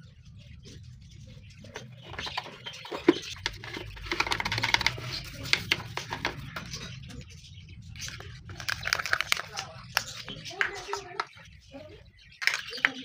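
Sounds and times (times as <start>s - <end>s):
toothbrush scrubbing plastic: 1.6s - 7.0s, 7.9s - 11.4s, 12.4s - 13.0s.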